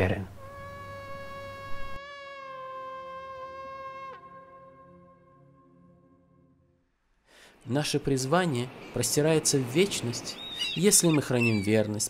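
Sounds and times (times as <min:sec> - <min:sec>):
ram's horn blown: 0:00.3 - 0:06.8.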